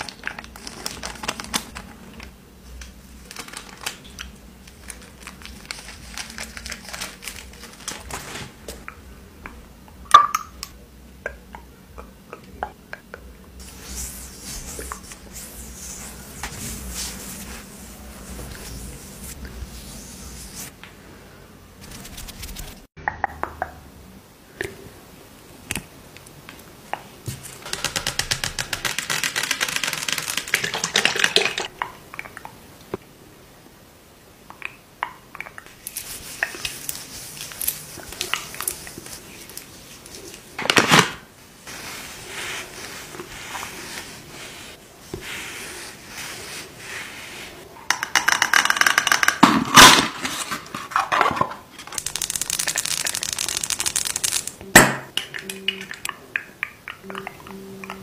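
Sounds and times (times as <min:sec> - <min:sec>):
scratching and crinkling: 0:00.0 - 0:08.9, 0:13.6 - 0:20.7, 0:21.8 - 0:22.9, 0:27.3 - 0:31.7, 0:35.7 - 0:54.6.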